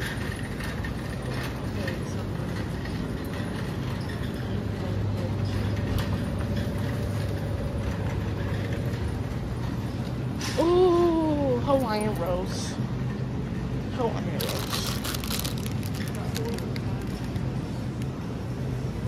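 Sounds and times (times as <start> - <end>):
constant low hum: 0.0 - 19.0
shopping cart rattling on concrete: 14.4 - 17.2.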